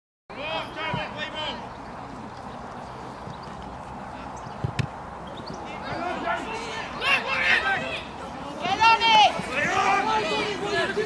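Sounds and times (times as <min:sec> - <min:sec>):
players shouting calls: 0:00.3 - 0:01.8, 0:05.4 - 0:11.0
boot kicking a ball: 0:04.6 - 0:05.0.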